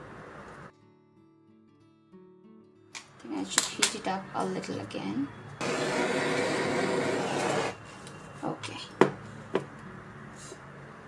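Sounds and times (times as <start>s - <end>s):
gas torch hissing: 5.6s - 7.8s.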